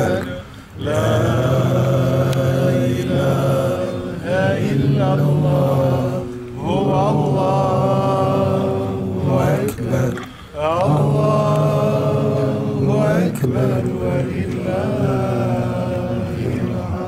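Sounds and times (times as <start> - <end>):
man chanting recitation: 0.0 - 17.0.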